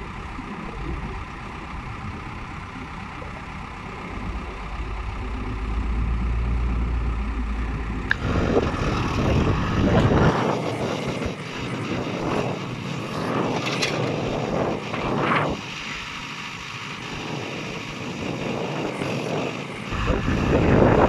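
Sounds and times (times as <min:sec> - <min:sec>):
diesel engine running: 0:00.0 - 0:21.0
hydraulic sound: 0:08.1 - 0:16.1.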